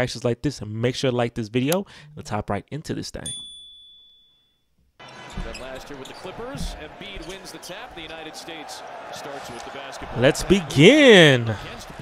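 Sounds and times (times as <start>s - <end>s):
commentator speaking: 5.5s - 12.0s.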